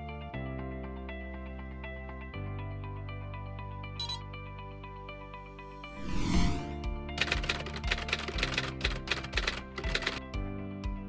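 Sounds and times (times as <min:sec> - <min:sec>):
background music with steady beat: 0:00.0 - 0:11.0
typewriter key clicks: 0:07.2 - 0:10.2.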